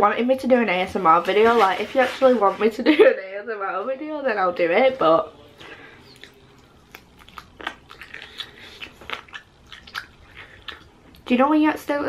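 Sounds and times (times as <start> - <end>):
person chewing chicken wing: 6.1 - 11.3.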